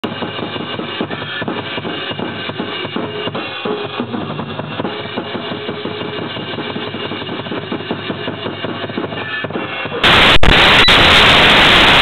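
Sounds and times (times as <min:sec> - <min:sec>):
rapid drum hits: 0:00.0 - 0:12.0.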